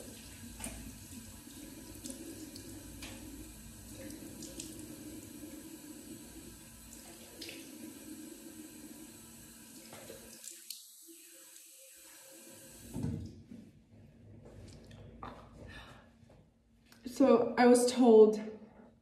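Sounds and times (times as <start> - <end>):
tap water running into sink: 0.0 - 13.3.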